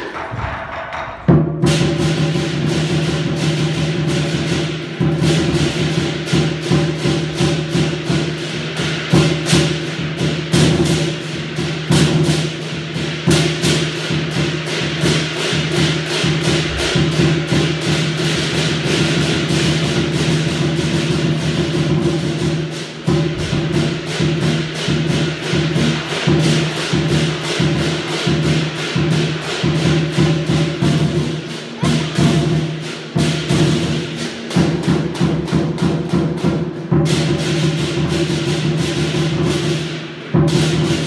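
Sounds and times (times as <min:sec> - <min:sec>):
drum: 0:00.0 - 0:41.0
gong: 0:01.6 - 0:39.9
crash cymbals: 0:01.6 - 0:41.0.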